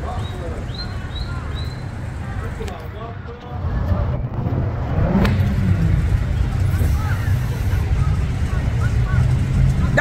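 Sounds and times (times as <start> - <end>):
cars passing: 0.0 - 10.0
low traffic rumble: 0.0 - 10.0.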